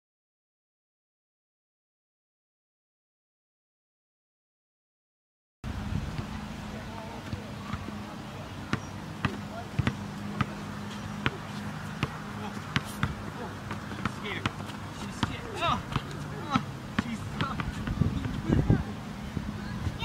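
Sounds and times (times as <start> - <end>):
basketball bouncing on court: 8.7 - 18.5.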